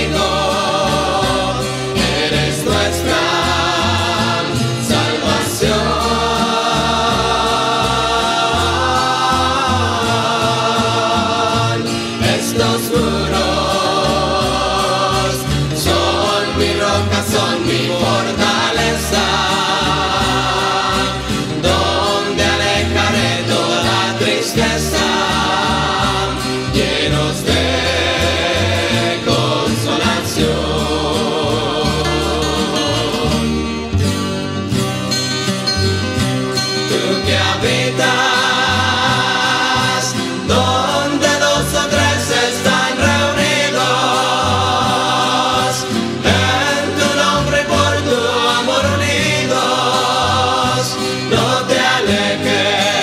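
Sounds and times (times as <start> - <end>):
group singing in harmony: 0.0 - 53.0
guitars: 0.0 - 53.0
steady bass line: 0.0 - 53.0.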